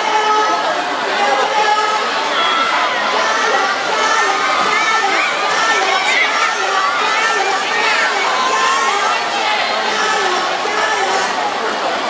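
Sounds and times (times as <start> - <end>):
children shouting and cheering: 0.0 - 11.8.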